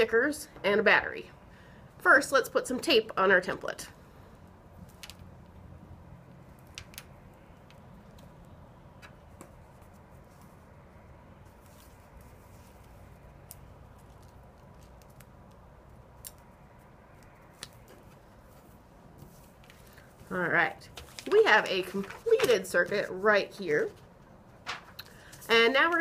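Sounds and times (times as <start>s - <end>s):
tape clicks and crinkles: 6.5s - 10.1s, 11.7s - 18.2s.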